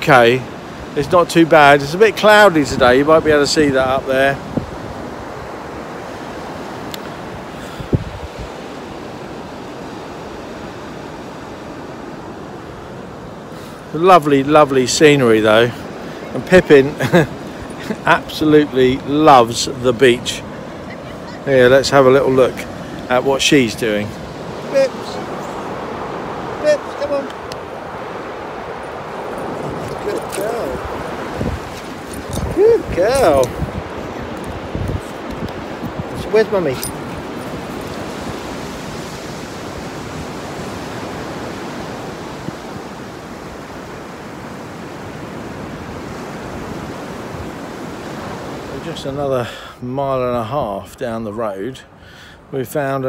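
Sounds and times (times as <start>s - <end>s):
surf breaking on beach: 0.0s - 49.4s
wind buffeting microphone: 2.6s - 10.0s, 22.4s - 48.6s.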